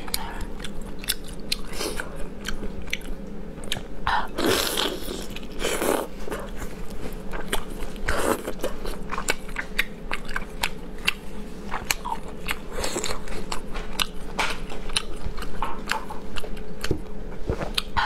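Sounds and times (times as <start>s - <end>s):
chewing and crunching shellfish: 0.0s - 18.0s.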